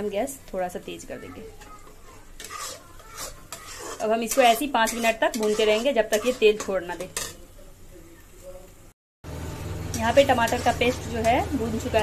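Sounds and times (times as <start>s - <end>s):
paste frying: 0.0s - 8.4s, 9.3s - 12.0s
metal spatula scraping pan: 1.3s - 7.4s, 10.0s - 12.0s.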